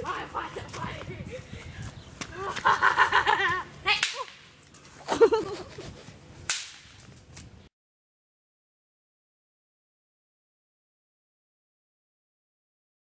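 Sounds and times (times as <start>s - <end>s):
boys yelling: 0.0s - 1.4s
sharp cracks: 3.9s - 4.7s, 6.5s - 7.0s.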